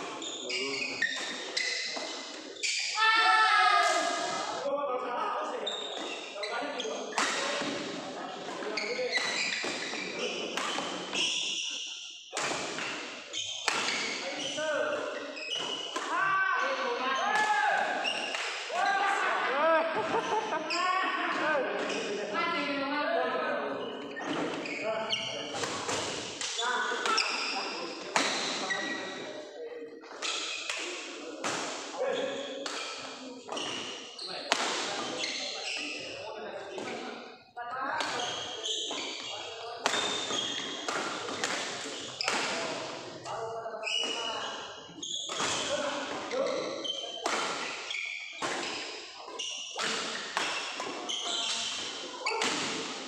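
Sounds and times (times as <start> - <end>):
shoes squeaking on court: 0.1 - 3.0, 5.7 - 7.9, 8.5 - 16.1, 21.8 - 22.2, 23.7 - 29.3, 29.9 - 31.1, 32.2 - 36.2, 38.0 - 42.9, 43.8 - 53.0
racket striking shuttlecock: 13.6 - 14.0.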